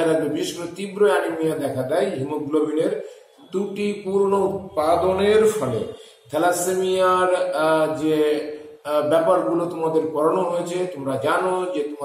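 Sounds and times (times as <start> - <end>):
man speaking in sing-song way: 3.5 - 7.5.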